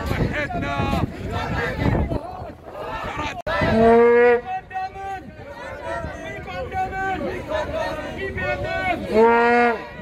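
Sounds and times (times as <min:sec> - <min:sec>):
crowd voices calling: 0:00.0 - 0:10.0.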